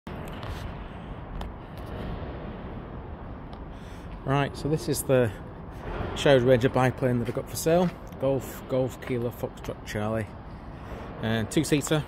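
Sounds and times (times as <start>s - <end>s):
low rumble: 0.1s - 9.6s.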